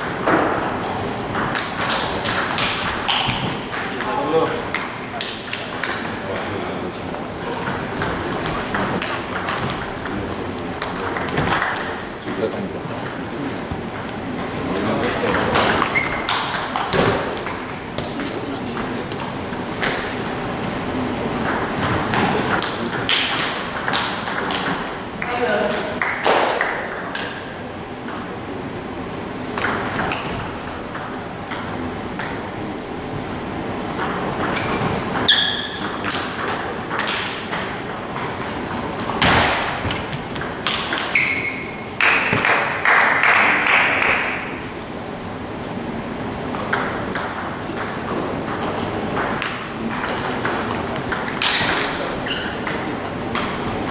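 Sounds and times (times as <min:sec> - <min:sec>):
voices talking: 0:03.6 - 0:23.5.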